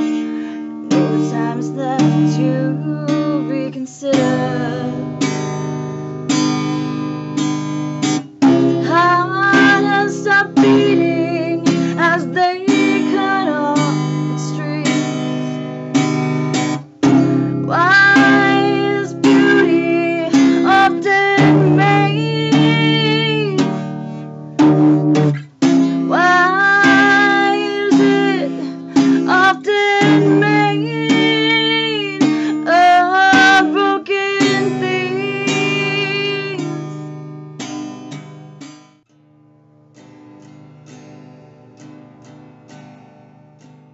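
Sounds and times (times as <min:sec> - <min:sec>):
woman singing: 0:00.0 - 0:05.6, 0:08.4 - 0:16.2, 0:17.0 - 0:24.0, 0:24.6 - 0:37.1
strummed acoustic guitar: 0:00.0 - 0:43.9.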